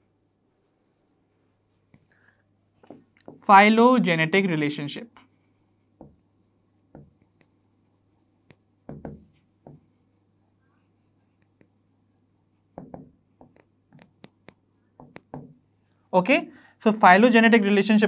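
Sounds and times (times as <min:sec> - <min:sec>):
marker pen writing on whiteboard: 0:02.8 - 0:15.7.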